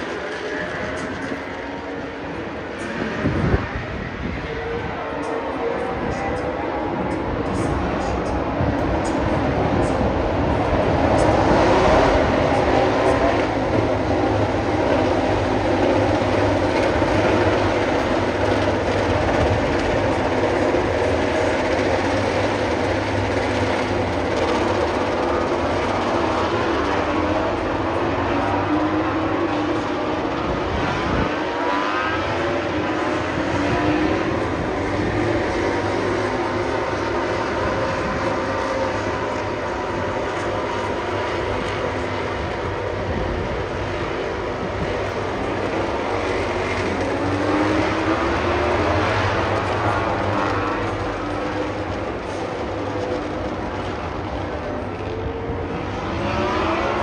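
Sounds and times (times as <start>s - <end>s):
racing motorcycle engines: 0.0s - 57.0s.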